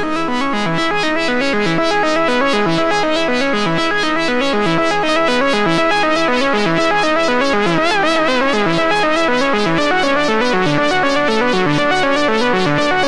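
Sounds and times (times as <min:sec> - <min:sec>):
synthesizer sequenced pattern: 0:00.0 - 0:13.0.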